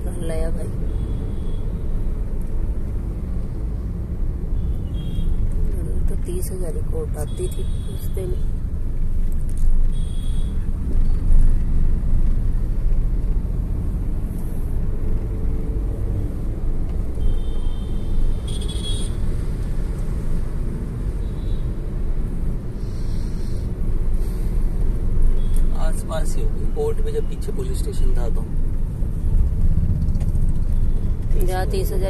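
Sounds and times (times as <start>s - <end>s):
car rumbling in traffic: 0.0s - 32.0s.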